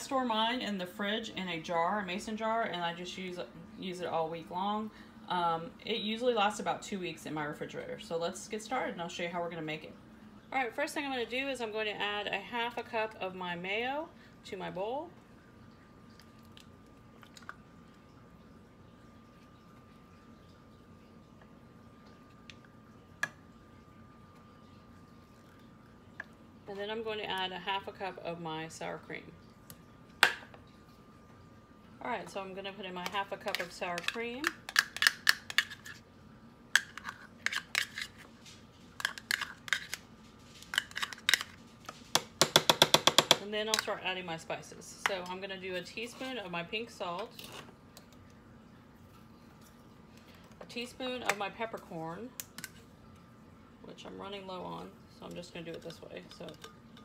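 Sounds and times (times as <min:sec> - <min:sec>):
faint steady high hum: 0:00.0 - 0:57.0.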